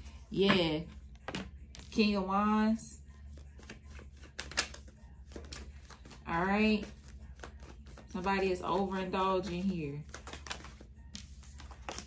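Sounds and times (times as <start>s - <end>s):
low steady hum: 0.0s - 12.0s
cards clicking and tapping: 3.6s - 6.2s, 10.0s - 12.0s.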